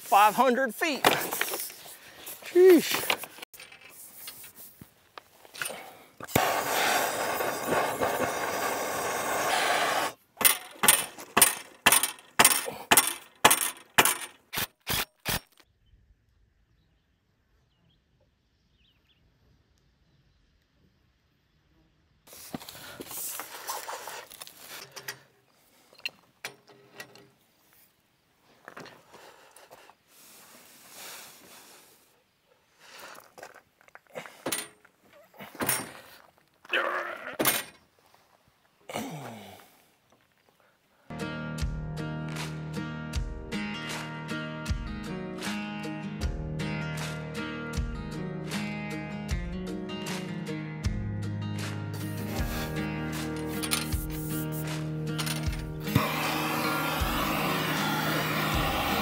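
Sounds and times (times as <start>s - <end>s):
steel bar tamping strikes: 10.4s - 14.4s
stone and dirt rattling: 10.4s - 14.5s.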